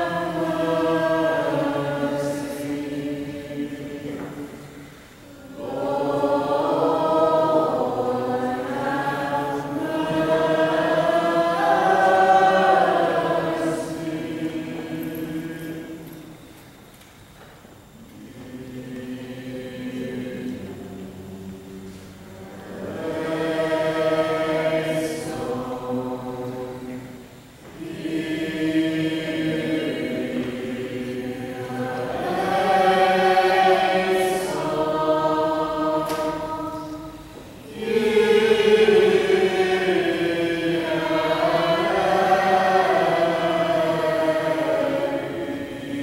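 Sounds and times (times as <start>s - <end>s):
choir singing a chant: 0.0s - 16.5s, 17.8s - 46.0s
singers breathing: 4.8s - 5.3s.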